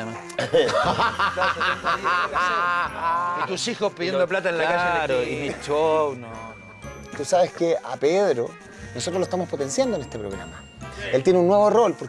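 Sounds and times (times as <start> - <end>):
people laughing: 0.4 - 3.8.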